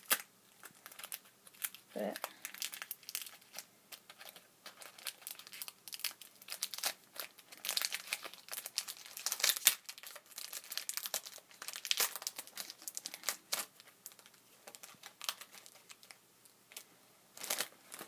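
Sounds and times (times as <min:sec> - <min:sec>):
wrapper crinkling and tearing: 0:00.0 - 0:18.0.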